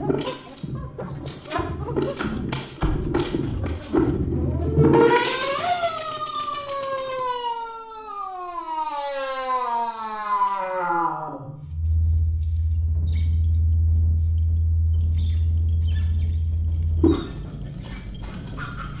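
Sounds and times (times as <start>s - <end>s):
steady low drone: 11.5s - 19.0s.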